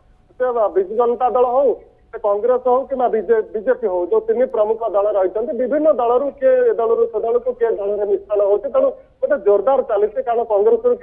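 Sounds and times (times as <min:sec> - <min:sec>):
man speaking: 0:00.4 - 0:11.0.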